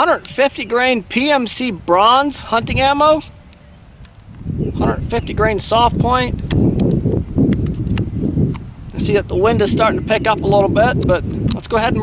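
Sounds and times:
wind rumble on microphone: 1.7s - 12.0s
rifle action clicks: 6.4s - 8.6s.

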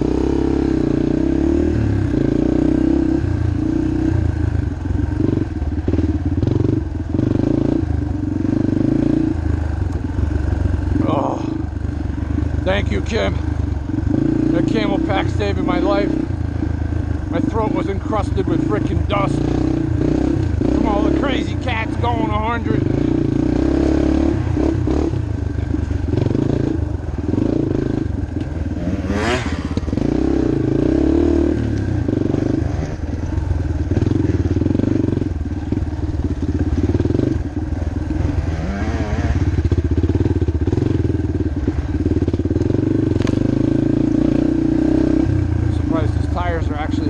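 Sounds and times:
trail bike engine revving: 0.0s - 47.0s.

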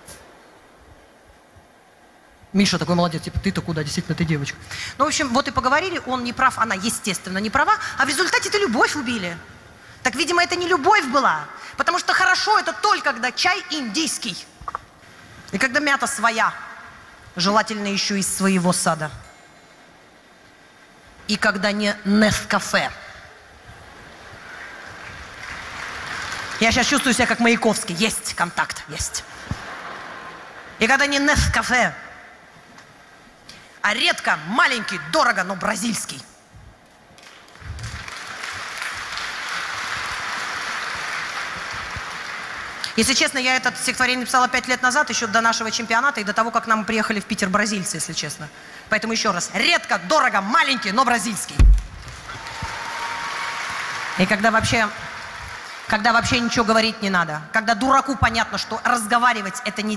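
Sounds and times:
crowd noise hiss: 0.0s - 44.8s, 51.5s - 57.1s
audience applauding: 24.4s - 27.1s, 37.2s - 42.9s, 52.0s - 56.1s.

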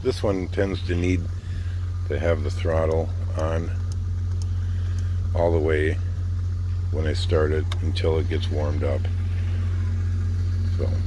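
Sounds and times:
atv engine running: 0.0s - 11.0s.

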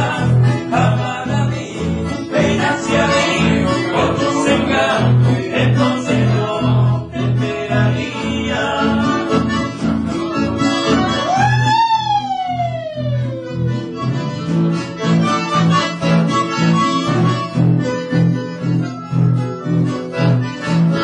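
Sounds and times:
accordion and acoustic guitars: 0.0s - 21.0s
steady bass pulse: 10.9s - 16.3s
long high cry: 11.1s - 13.3s.

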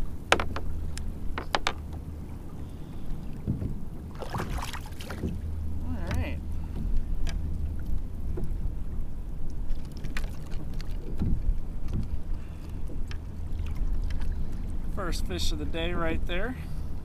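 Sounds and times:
water lapping at hull: 0.0s - 17.0s
wind rumble on microphone: 0.0s - 17.0s
light clicks and knocks: 0.3s - 2.0s.

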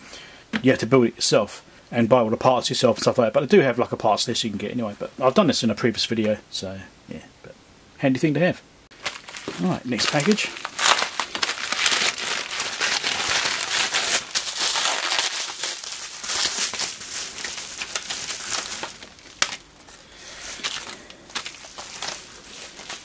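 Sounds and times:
packaging crinkling and rustling: 8.9s - 23.0s.

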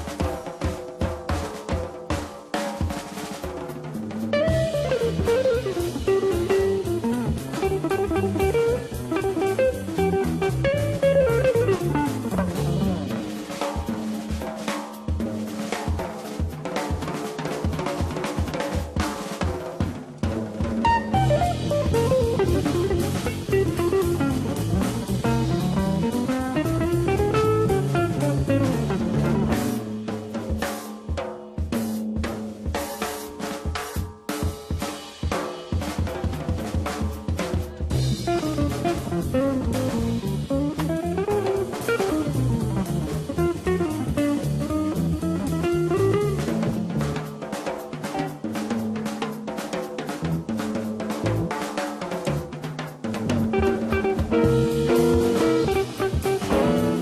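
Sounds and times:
drum kit playing: 0.0s - 57.0s
electric guitar runs: 53.5s - 57.0s.

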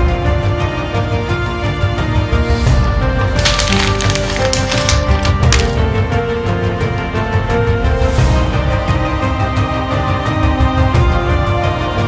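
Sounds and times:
background music: 0.0s - 12.0s
paper pages rustling and crumpling: 3.4s - 5.8s.

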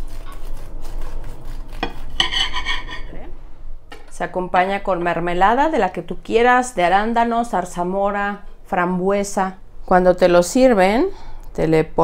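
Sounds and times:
knife sawing through crunchy crust: 0.0s - 3.0s
knife blade scraping plate: 1.7s - 3.2s.

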